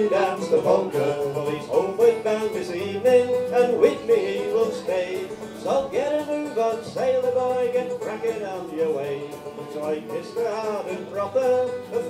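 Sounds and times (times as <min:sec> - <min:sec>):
fiddle sliding melody: 0:00.0 - 0:12.0
folk band playing: 0:00.0 - 0:12.0.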